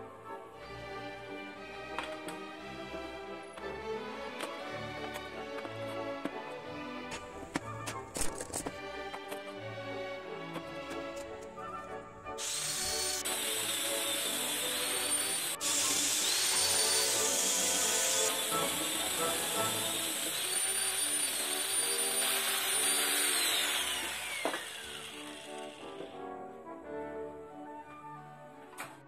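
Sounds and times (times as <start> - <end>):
background music: 0.0 - 29.0
angle grinder sanding wood: 11.2 - 26.2.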